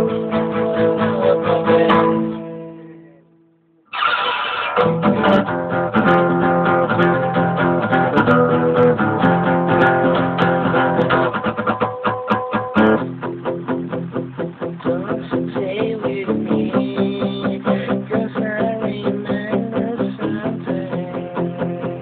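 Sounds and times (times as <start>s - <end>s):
acoustic guitar chords: 0.0s - 22.0s.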